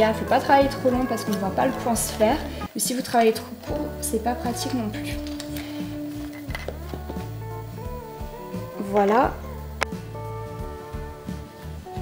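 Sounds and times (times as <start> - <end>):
instrumental music with held notes: 0.0 - 2.8, 3.4 - 12.0.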